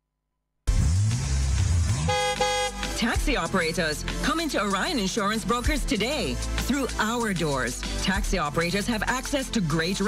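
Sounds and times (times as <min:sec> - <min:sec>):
car horn honking: 0:02.0 - 0:03.0.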